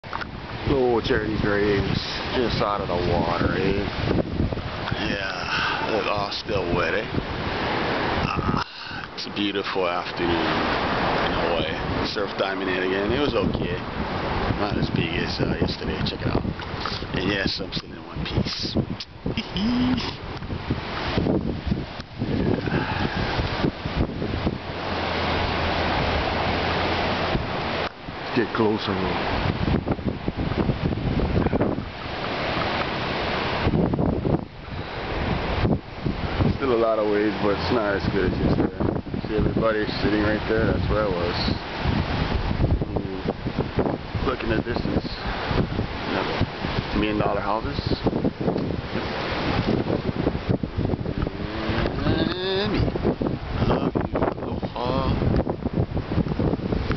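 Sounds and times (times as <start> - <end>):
ocean surf rushing: 0.0 - 56.9
wind buffeting microphone: 0.0 - 56.9
short voice-like calls: 19.0 - 20.3, 51.2 - 52.9.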